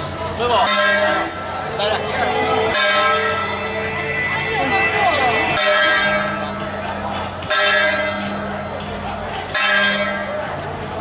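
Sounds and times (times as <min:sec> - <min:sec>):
crowd chatter: 0:00.0 - 0:11.0
metal gong ringing: 0:00.6 - 0:08.7.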